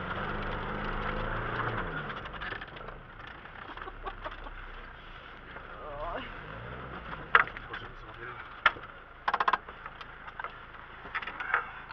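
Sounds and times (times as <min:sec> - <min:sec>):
car door latch clicks and rattles: 0:08.6 - 0:09.7.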